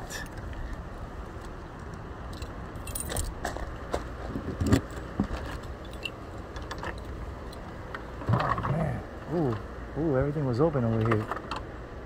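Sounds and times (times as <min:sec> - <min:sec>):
keys jangling: 0:02.3 - 0:03.4, 0:05.8 - 0:06.2.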